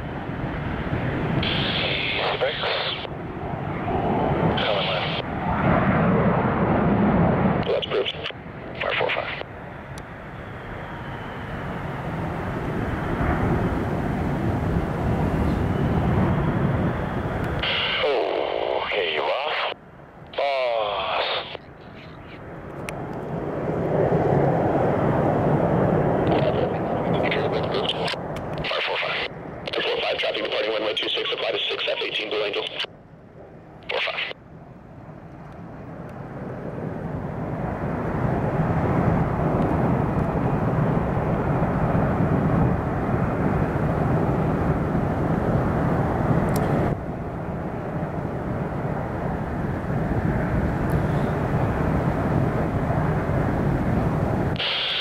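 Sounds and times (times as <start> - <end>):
jet engines running: 0.0 - 55.0
air-band radio burst: 1.4 - 3.1, 4.6 - 5.2, 7.7 - 9.4, 17.6 - 19.8, 20.4 - 22.4, 26.3 - 32.9, 33.8 - 34.4, 54.6 - 55.0.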